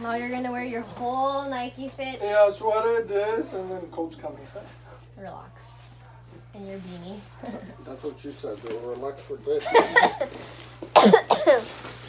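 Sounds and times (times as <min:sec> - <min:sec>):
person coughing: 0:09.7 - 0:10.3, 0:11.0 - 0:11.8.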